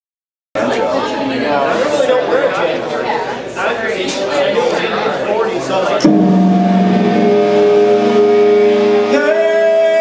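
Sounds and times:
guitar note sliding up: 0:06.0 - 0:09.3
electric guitar chord ringing: 0:06.0 - 0:09.8.

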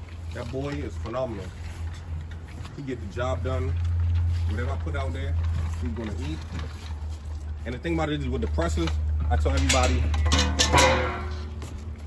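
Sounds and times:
metal gate latch clanking: 0:09.5 - 0:11.6
metallic ringing: 0:09.5 - 0:11.7.

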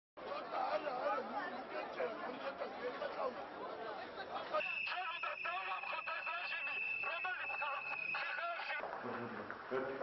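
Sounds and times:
crowd chatter: 0:00.2 - 0:08.9.

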